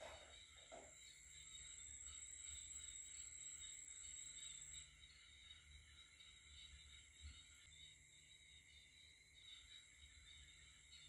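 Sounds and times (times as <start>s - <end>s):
crickets chirring: 0.0s - 11.0s.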